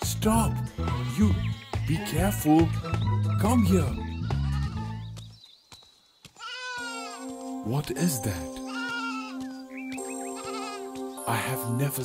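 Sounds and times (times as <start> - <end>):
sustained background music notes: 0.0 - 5.3, 6.8 - 12.0
sheep bleating: 0.7 - 3.0, 6.4 - 7.2, 8.7 - 9.4, 10.3 - 11.0.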